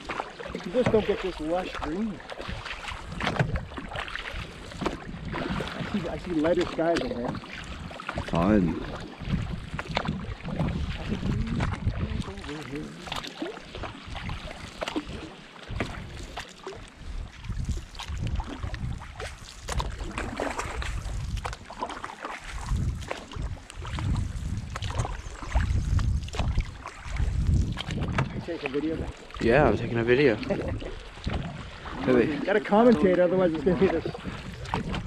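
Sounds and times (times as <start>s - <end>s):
paddle knocking on hull: 0.0s - 16.4s, 18.0s - 29.8s, 30.4s - 35.0s
paddle splashing in water: 0.0s - 35.0s
wind on microphone: 0.0s - 35.0s.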